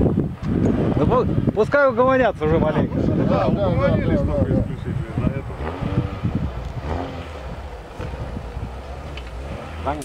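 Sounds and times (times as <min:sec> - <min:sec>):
distant engine rumble: 0:00.0 - 0:10.0
wind on microphone: 0:00.0 - 0:10.0.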